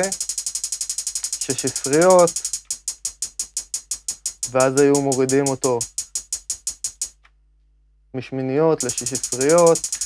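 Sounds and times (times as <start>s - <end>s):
hi-hat ticking in trap beat: 0.0s - 7.2s, 8.8s - 10.0s.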